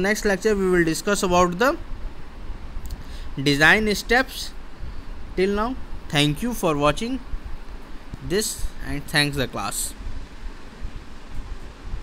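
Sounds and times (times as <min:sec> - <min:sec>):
low rumbling background noise: 0:00.0 - 0:12.0.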